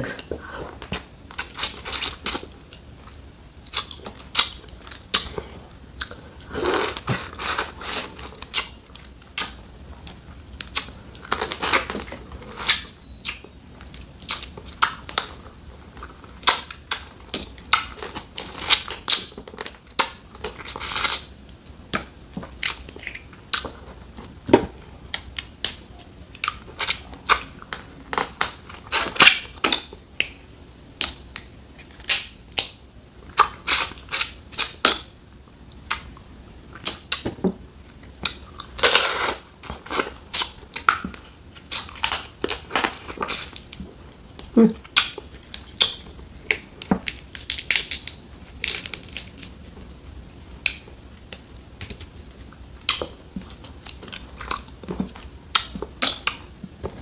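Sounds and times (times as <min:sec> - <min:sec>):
crab shell cracking: 0:45.0 - 0:49.6.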